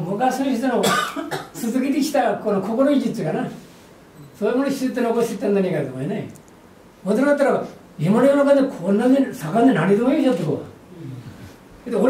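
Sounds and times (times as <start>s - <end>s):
man coughing: 0.8s - 1.6s
man talking: 1.6s - 3.6s, 4.4s - 6.4s, 7.0s - 12.0s.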